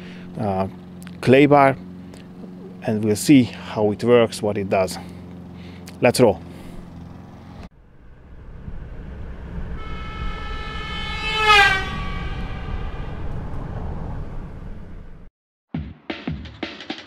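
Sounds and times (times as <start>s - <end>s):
low rumble: 7.8s - 15.3s
horn-like chord dropping in pitch: 8.3s - 14.3s.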